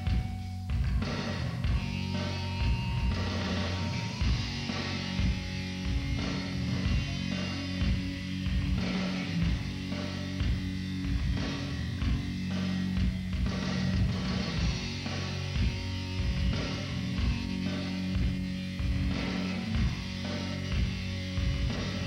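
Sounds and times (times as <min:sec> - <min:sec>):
bass notes: 0:00.0 - 0:22.0
drum beat: 0:00.0 - 0:22.0
electric guitar: 0:00.0 - 0:22.0.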